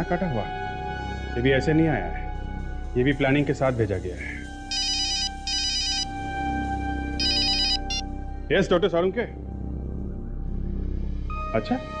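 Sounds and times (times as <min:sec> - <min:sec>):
background music drone: 0:00.0 - 0:12.0
mobile phone ringtone trilling: 0:04.7 - 0:06.1, 0:07.2 - 0:08.0.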